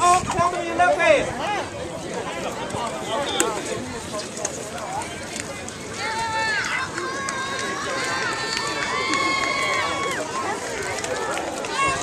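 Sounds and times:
outdoor crowd chatter: 0:00.0 - 0:12.0.

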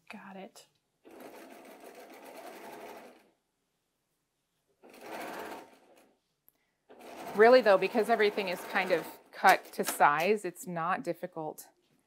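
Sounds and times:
sewing machine stitching: 0:01.0 - 0:03.3, 0:04.8 - 0:06.2, 0:06.9 - 0:09.6.

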